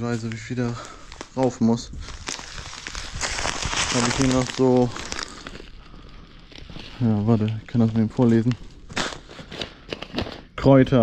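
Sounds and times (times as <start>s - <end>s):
plastic bag crinkling: 0.2s - 10.4s.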